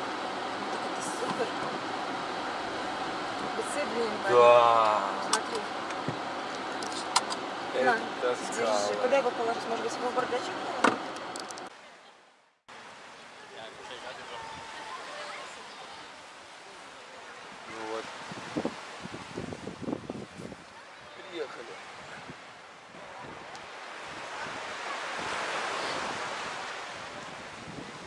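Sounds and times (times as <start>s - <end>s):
open-air hiss: 0.0s - 28.0s
car cabin noise: 4.8s - 11.7s
wind buffeting microphone: 17.5s - 28.0s.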